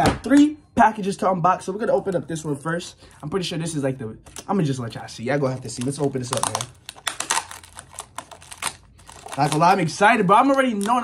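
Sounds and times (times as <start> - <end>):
plastic mailer bag crinkling: 4.3 - 11.0.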